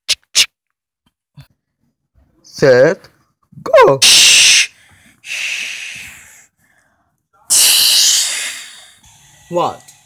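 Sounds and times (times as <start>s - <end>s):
child making hissing explosion sound: 4.0s - 4.7s, 7.5s - 8.8s.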